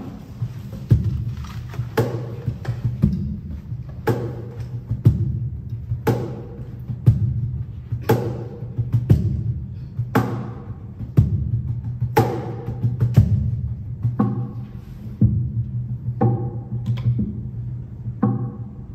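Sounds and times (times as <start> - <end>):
cajon beats: 0.0 - 18.9.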